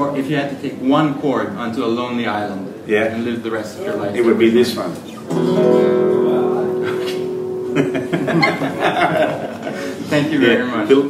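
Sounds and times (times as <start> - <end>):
guitar chord ringing: 5.3 - 9.1.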